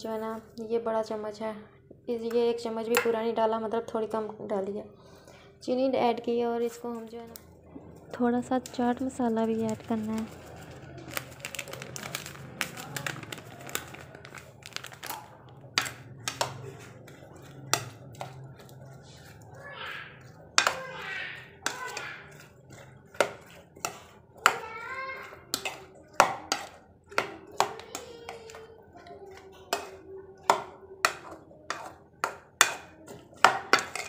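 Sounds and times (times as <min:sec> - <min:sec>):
metal spoon clinking against bowl: 0:29.7 - 0:34.0.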